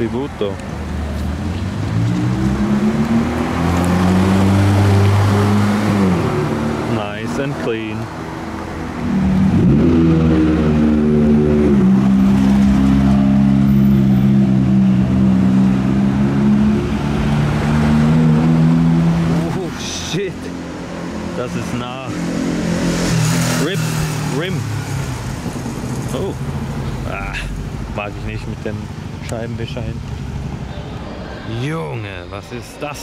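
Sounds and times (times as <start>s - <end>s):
street noise: 0.0s - 33.0s
car engine accelerating: 0.9s - 19.8s
voices: 6.8s - 8.2s, 19.3s - 20.6s, 21.3s - 22.2s, 23.5s - 24.8s, 26.0s - 33.0s.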